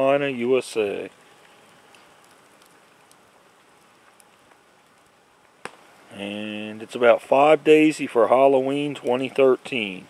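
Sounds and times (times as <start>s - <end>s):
campfire crackling: 0.0s - 10.0s
campfire pop: 0.0s - 10.0s.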